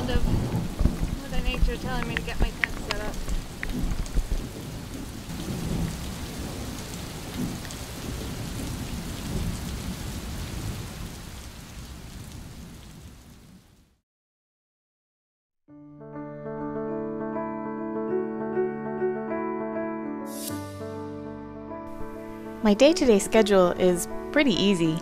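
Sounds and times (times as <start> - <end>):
raindrop ticks: 0.0 - 9.8
low rumble of wind: 0.0 - 12.8
steady rain: 0.0 - 14.0.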